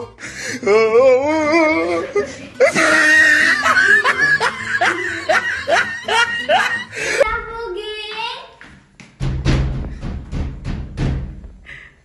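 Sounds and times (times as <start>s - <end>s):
high-pitched laughter whoops: 1.3s - 7.2s.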